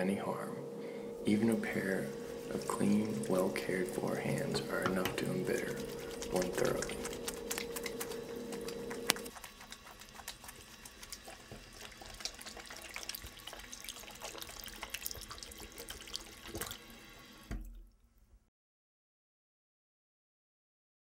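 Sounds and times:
steady hum: 0:00.0 - 0:13.9
tap water running into sink: 0:01.3 - 0:18.0.

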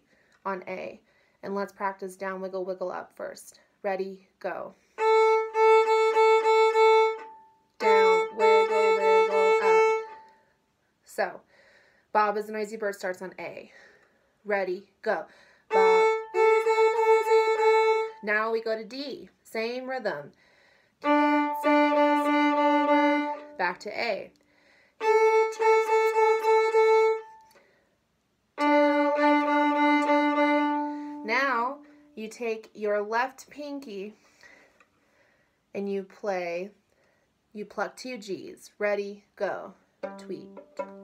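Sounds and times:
violin bowed in short strokes: 0:05.0 - 0:10.3, 0:21.0 - 0:23.6, 0:25.0 - 0:27.5, 0:28.6 - 0:31.9.

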